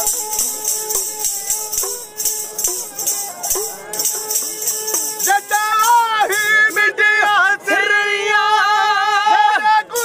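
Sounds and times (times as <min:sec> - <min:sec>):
bowed string instrument held notes: 0:00.0 - 0:06.6
hand drum strokes: 0:00.0 - 0:06.8.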